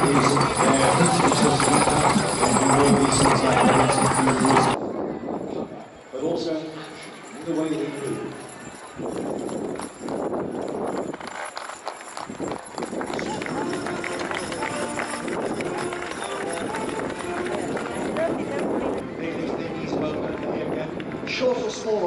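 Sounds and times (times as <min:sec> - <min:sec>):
horse hoofbeats: 0:00.0 - 0:04.8, 0:07.2 - 0:19.5
wagon noise: 0:00.0 - 0:04.8, 0:06.6 - 0:20.0
crowd voices: 0:00.0 - 0:22.0.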